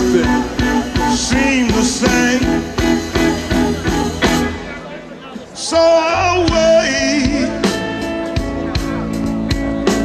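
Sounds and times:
electric blues band playing: 0:00.0 - 0:10.0.

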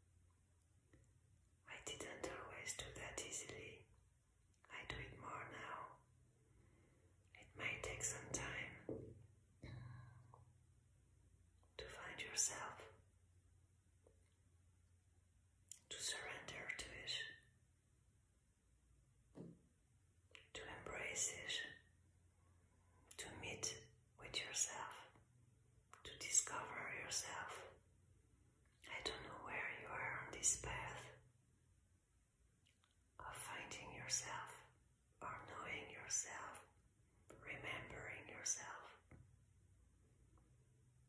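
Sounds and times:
woman whispering softly: 0:01.6 - 0:03.9, 0:04.6 - 0:06.1, 0:07.3 - 0:10.4, 0:11.8 - 0:13.0, 0:15.7 - 0:17.5, 0:20.4 - 0:21.8, 0:23.1 - 0:25.2, 0:26.0 - 0:27.8, 0:28.8 - 0:31.2, 0:33.2 - 0:39.2.

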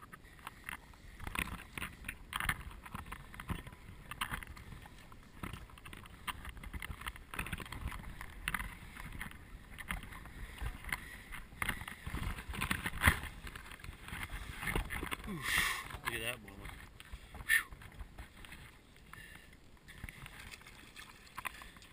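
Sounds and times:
wind rumbling on microphone: 0:00.0 - 0:21.9.

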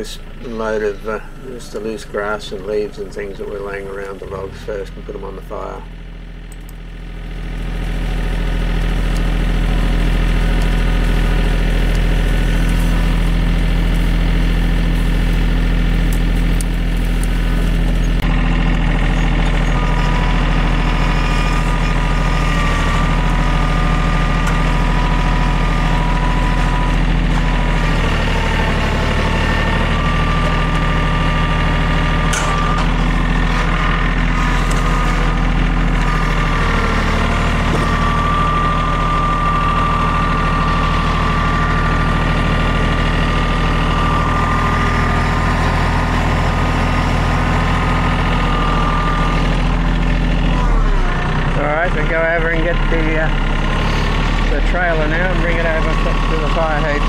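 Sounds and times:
hydraulics whining: 0:00.0 - 0:57.0
tractor diesel engine revving: 0:00.0 - 0:57.0.

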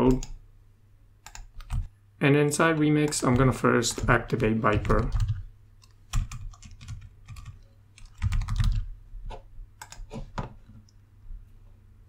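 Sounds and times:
computer keyboard typing: 0:00.0 - 0:00.4, 0:01.2 - 0:01.9, 0:02.7 - 0:08.9, 0:09.8 - 0:10.2.

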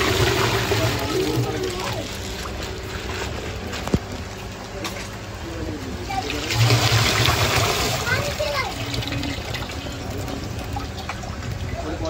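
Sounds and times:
water trickling and splashing: 0:06.0 - 0:12.0.

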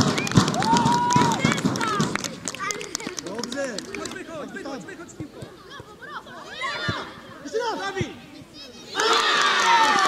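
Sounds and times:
children shouting: 0:08.6 - 0:10.0.

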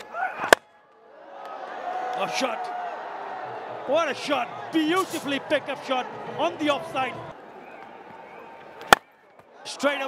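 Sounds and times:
stadium crowd noise: 0:00.0 - 0:10.0.

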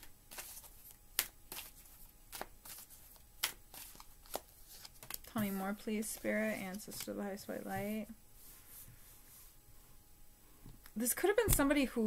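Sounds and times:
cards being shuffled: 0:00.0 - 0:07.2.

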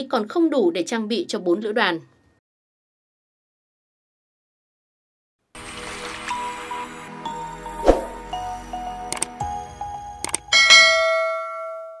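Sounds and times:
double mouse click: 0:09.1 - 0:09.3, 0:10.2 - 0:10.4.

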